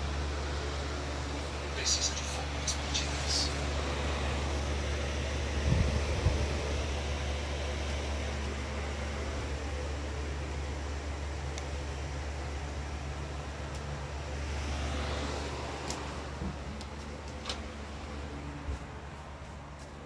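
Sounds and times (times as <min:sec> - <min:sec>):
fan humming with hiss: 0:00.0 - 0:20.0.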